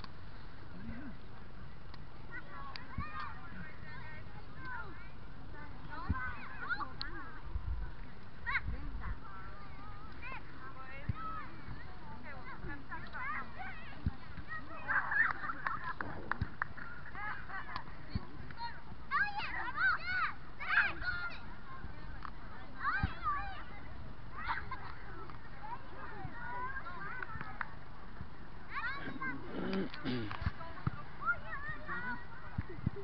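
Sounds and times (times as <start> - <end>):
children calling and shouting: 0.0 - 33.0.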